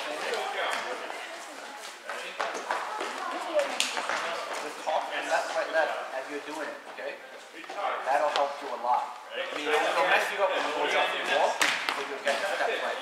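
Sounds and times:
players talking: 0:00.0 - 0:13.0.

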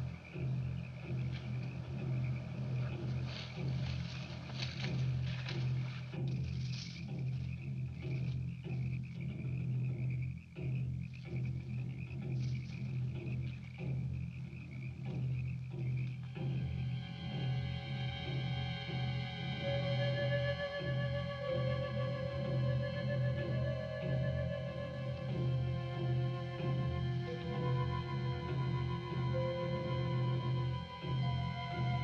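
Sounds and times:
frogs and insects calling: 0:00.0 - 0:32.0
low steady drone: 0:00.0 - 0:32.0.

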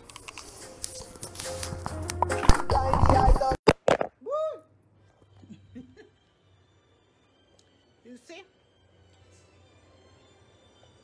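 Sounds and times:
music playing from phone: 0:00.0 - 0:03.6.

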